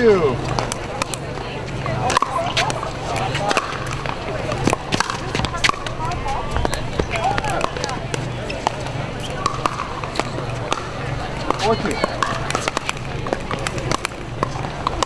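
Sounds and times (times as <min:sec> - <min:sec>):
background chatter: 0:00.0 - 0:15.0
paddles hitting plastic ball: 0:00.4 - 0:15.0.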